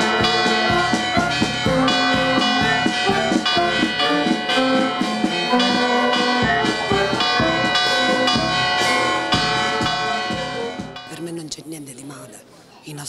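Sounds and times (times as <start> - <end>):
clarinets and brass melody: 0.0 - 11.1
steady drum beat: 0.0 - 11.1.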